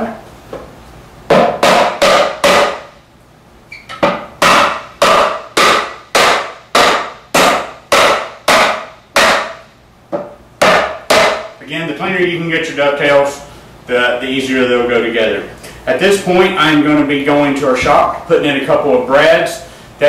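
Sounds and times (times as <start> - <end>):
rubber mallet knocking on wood: 1.3 - 2.9, 4.0 - 11.5.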